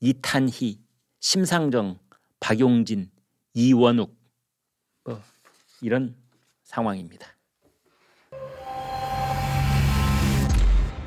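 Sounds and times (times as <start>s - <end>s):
low drone: 8.4s - 11.0s.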